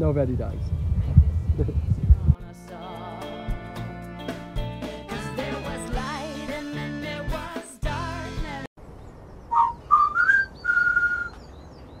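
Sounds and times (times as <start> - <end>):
song with singing: 1.9 - 4.0, 4.7 - 8.7
faint high chirps: 9.4 - 12.0
short whistled notes: 9.5 - 11.4.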